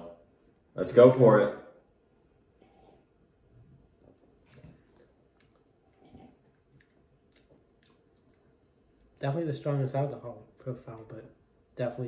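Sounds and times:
people sipping and swallowing: 2.5s - 9.2s.

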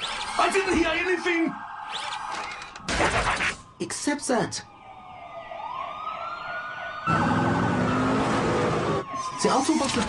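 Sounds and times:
emergency vehicle sirens wailing: 0.0s - 10.0s
vehicle noise: 7.0s - 10.0s.

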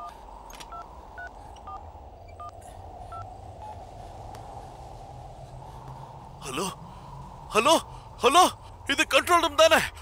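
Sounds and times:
phone keypad beeps: 2.4s - 2.6s.

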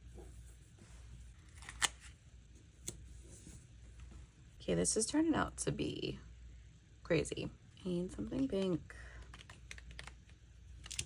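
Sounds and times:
sticker book pages rustling: 9.3s - 11.0s.

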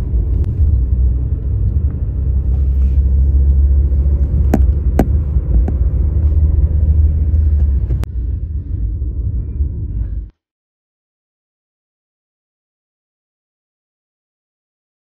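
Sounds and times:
car road and wind rumble: 0.0s - 10.3s.

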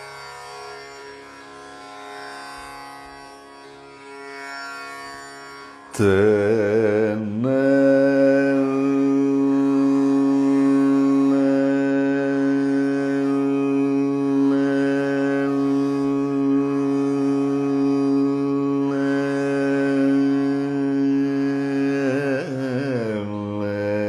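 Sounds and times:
man singing long steady note: 5.9s - 24.0s.

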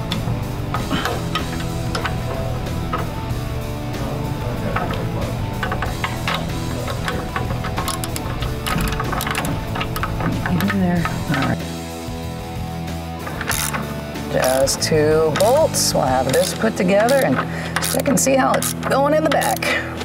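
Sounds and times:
hand ratchet clicking: 0.0s - 3.9s, 4.6s - 11.6s, 13.2s - 19.9s
rock music with guitar: 0.0s - 20.0s.

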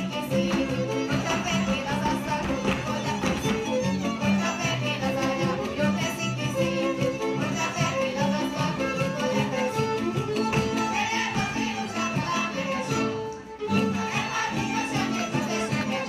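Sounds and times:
folk dance music with fiddle: 0.0s - 16.0s.

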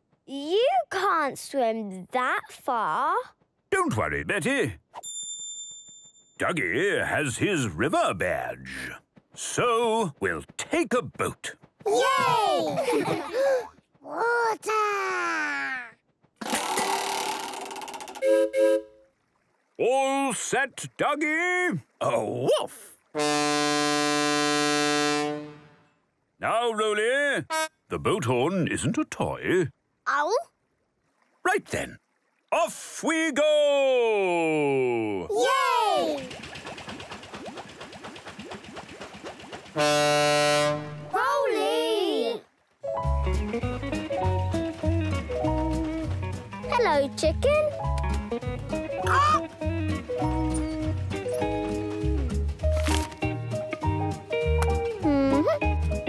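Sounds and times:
boat horn toots: 18.2s - 19.1s, 23.2s - 25.8s, 27.4s - 27.9s, 39.8s - 41.2s
boat puttering: 35.5s - 41.4s, 42.5s - 55.8s.

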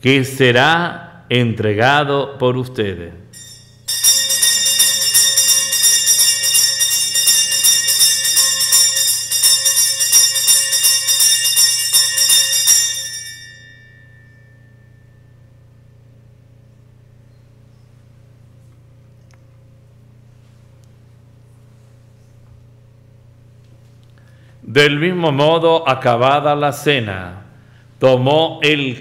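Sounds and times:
bells ringing rapidly: 3.4s - 15.5s
faint low hum: 13.0s - 29.0s.

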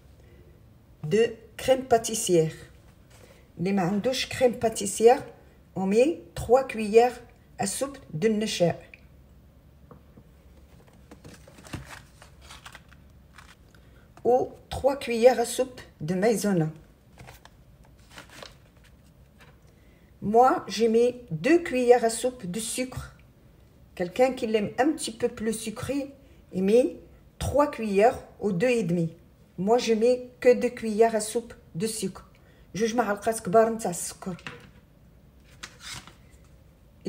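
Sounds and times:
paper packet rustling: 10.7s - 13.6s, 17.1s - 19.6s, 35.4s - 36.5s.

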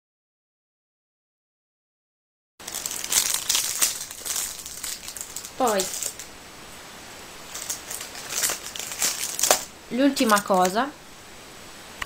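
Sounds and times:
material crinkling and rustling: 2.6s - 6.4s, 7.4s - 10.9s.

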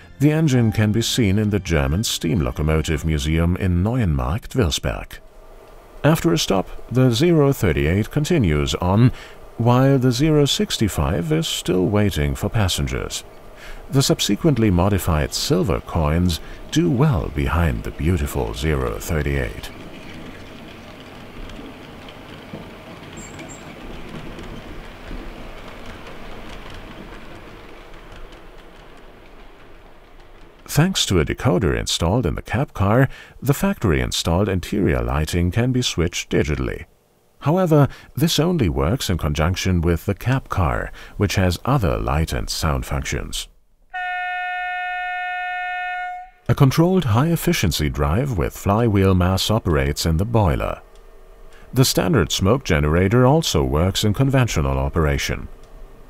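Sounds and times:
model train rolling on track: 0.0s - 56.0s
faint clicks: 19.7s - 30.7s
model train horn through small speaker: 43.9s - 46.5s.

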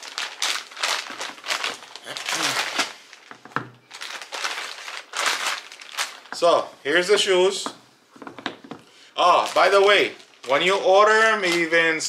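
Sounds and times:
plastic bag crinkling: 0.0s - 7.1s, 9.2s - 12.0s.

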